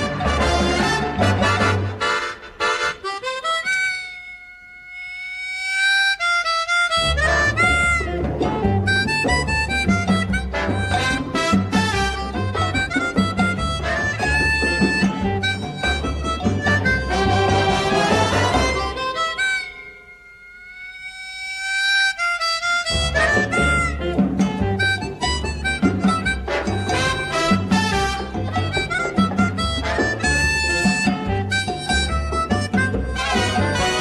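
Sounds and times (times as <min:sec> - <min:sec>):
harmonica holding long note: 0:00.0 - 0:34.0.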